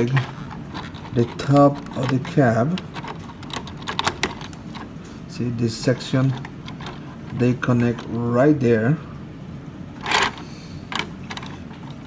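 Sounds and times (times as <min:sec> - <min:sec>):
plastic toy parts clicking: 0:00.1 - 0:04.9, 0:10.0 - 0:12.0.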